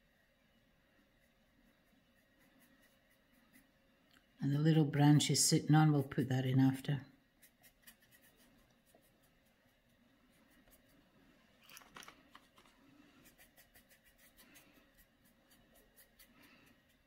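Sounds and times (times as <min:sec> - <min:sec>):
brush scrape: 0:01.1 - 0:03.9, 0:07.3 - 0:17.0
paintbrush scratching on canvas: 0:01.1 - 0:03.9, 0:07.2 - 0:11.2, 0:12.5 - 0:17.0.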